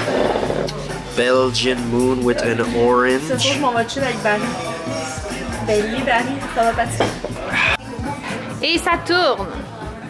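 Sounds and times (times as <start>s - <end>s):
background music: 0.0s - 10.0s
man's voice: 0.7s - 8.6s.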